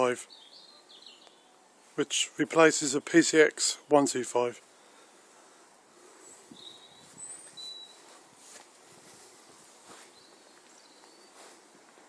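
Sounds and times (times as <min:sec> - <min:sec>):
high bird chirps: 0:00.2 - 0:01.6, 0:06.3 - 0:08.1.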